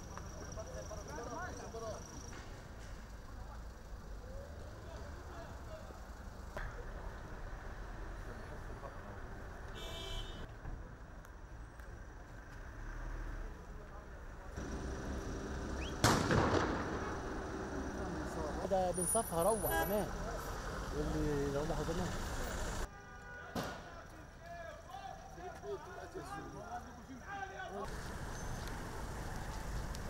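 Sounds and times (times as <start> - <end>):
street noise: 0.0 - 30.0
jeep engine idling: 14.5 - 16.0
gunshot echoing: 16.0 - 17.1.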